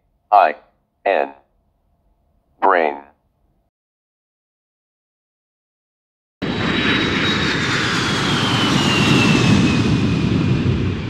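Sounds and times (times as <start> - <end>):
aircraft engine drone fly-by: 6.4 - 11.0.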